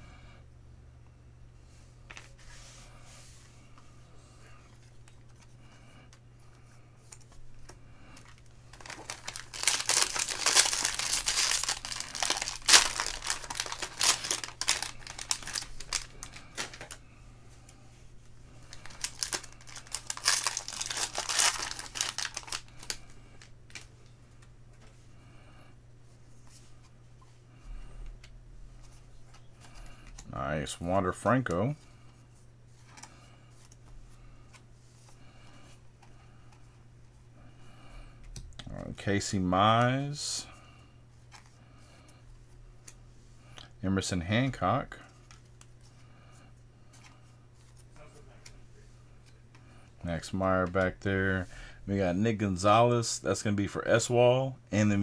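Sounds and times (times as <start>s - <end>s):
foil wrapper tearing and crinkling: 8.8s - 17.0s, 18.7s - 23.9s.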